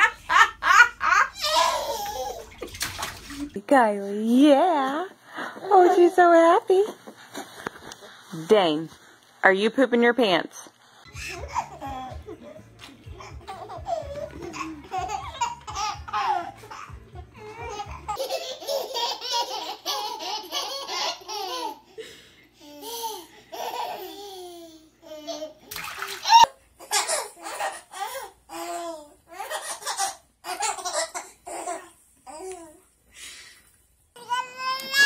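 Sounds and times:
babies laughing and babbling: 0:00.9 - 0:02.6, 0:11.1 - 0:21.9, 0:22.6 - 0:32.8, 0:34.2 - 0:35.0.

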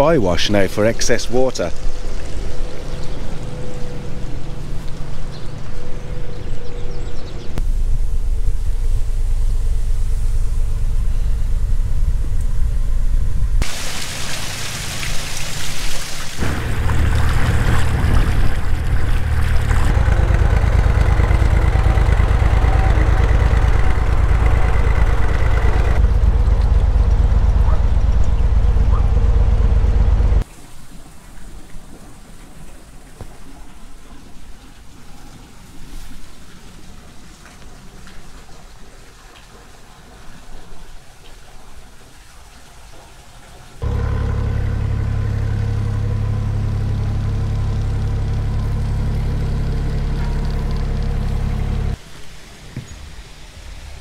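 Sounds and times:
faint outdoor sound: 0:00.0 - 0:54.0
diesel engine rumbling: 0:02.5 - 0:13.8, 0:16.4 - 0:30.4, 0:43.8 - 0:52.0.

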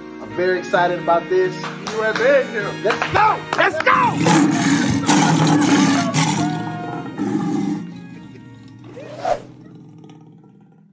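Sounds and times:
background music: 0:00.0 - 0:10.1
lion roar: 0:04.0 - 0:10.9.

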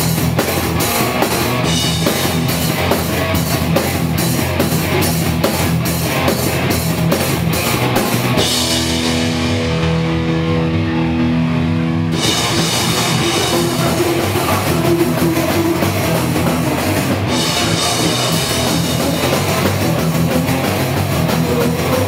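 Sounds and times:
punk band playing live: 0:00.0 - 0:22.0.

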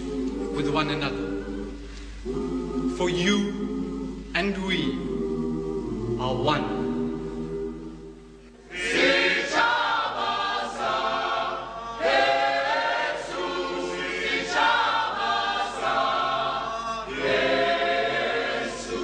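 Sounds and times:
choir singing: 0:00.0 - 0:19.0.

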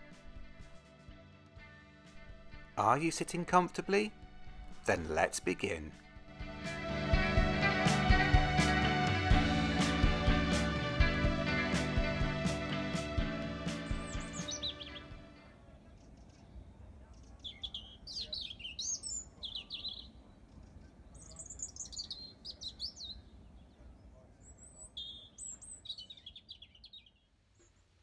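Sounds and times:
intro music: 0:00.0 - 0:15.4
songbird warbling: 0:13.9 - 0:15.1, 0:17.2 - 0:23.3, 0:24.4 - 0:27.8.

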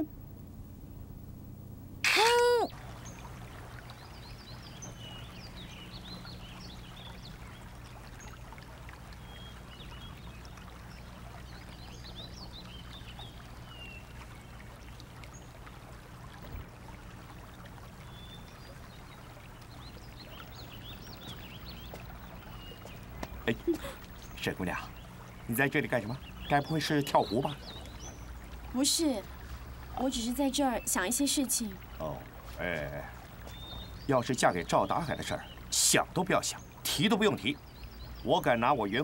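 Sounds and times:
low background hum: 0:00.0 - 0:39.0.

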